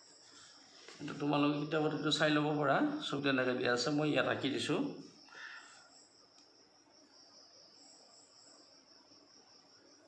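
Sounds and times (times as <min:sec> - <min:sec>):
high-pitched insect trill: 0:00.0 - 0:10.0.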